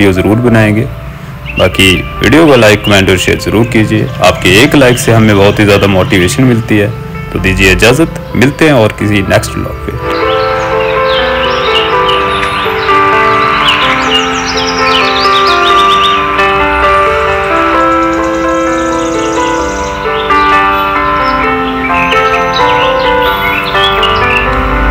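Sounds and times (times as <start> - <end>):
slow held music notes: 7.1 - 24.9.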